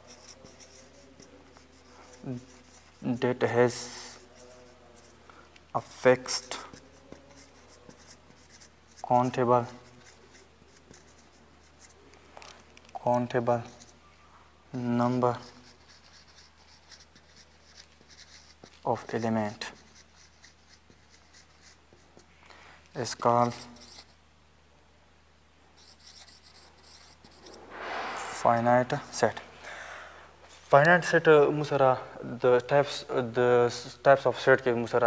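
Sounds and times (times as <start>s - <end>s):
marker pen writing on whiteboard: 0.0s - 12.0s, 14.8s - 22.4s, 23.0s - 24.2s, 25.8s - 27.6s.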